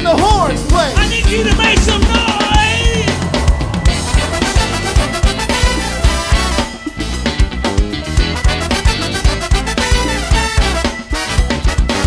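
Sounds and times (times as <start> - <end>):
funk band playing: 0.0 - 12.0
held lead note: 0.9 - 7.5.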